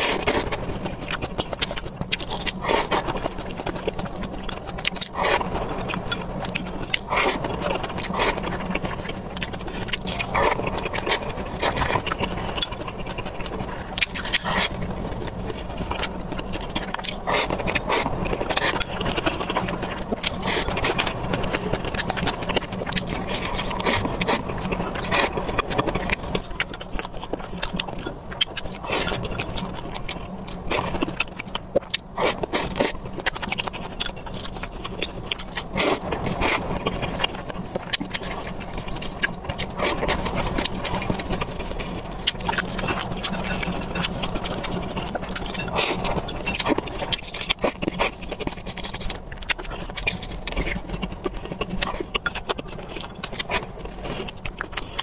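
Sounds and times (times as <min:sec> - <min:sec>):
chewing and eating: 0:00.0 - 0:55.0
steady low hum: 0:00.0 - 0:55.0.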